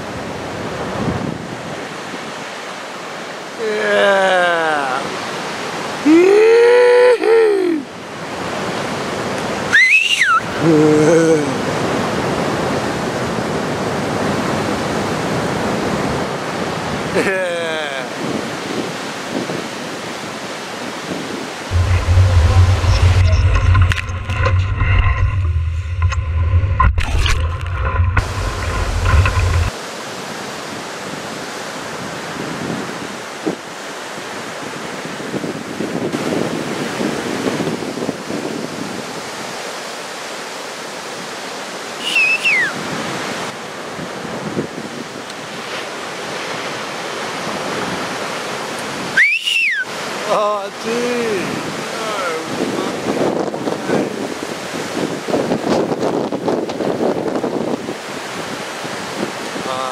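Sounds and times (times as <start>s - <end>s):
wind on microphone: 0.0s - 2.5s, 18.0s - 29.8s, 30.7s - 40.2s, 42.0s - 50.2s, 51.0s - 59.9s
heavy ocean surf: 0.0s - 59.9s
short high sliding calls: 9.7s - 10.6s, 42.0s - 42.8s, 49.2s - 49.9s
music with deep bass line: 21.7s - 29.7s.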